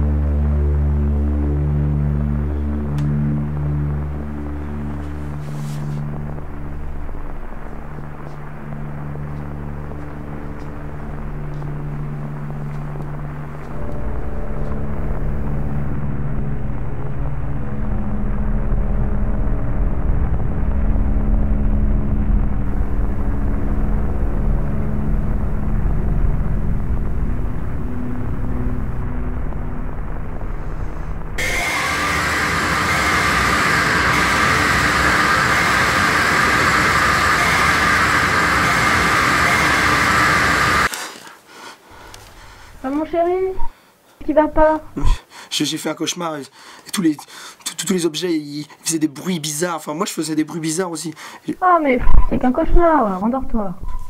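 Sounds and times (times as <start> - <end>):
low rumbling drone: 0.0 - 40.9, 41.9 - 43.7
sustained tones: 0.0 - 40.9
harsh static noise: 0.0 - 54.0.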